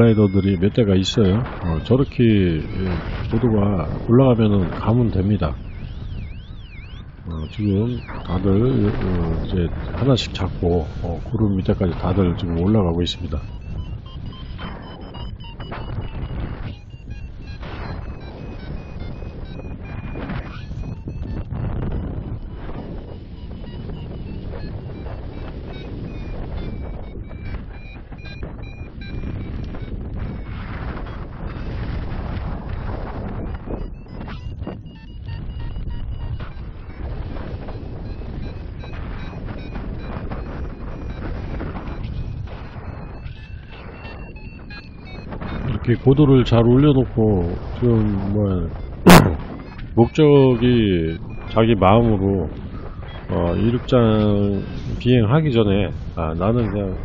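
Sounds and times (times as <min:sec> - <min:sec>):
variometer beeping in quick pulses: 0:00.0 - 0:57.0
wind rushing over microphone: 0:00.0 - 0:57.0.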